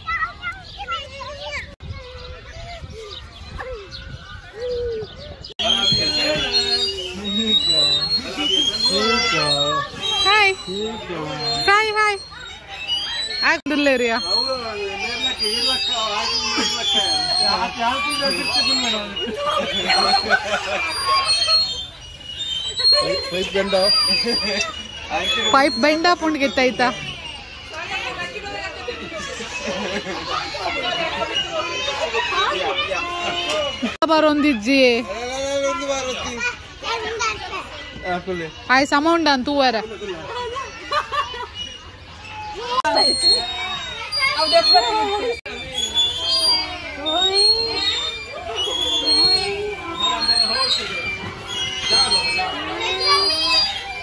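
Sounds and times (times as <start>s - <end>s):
faint bird chirps: 0.0s - 33.0s, 36.0s - 54.0s
children's voices: 0.0s - 38.7s, 39.8s - 54.0s.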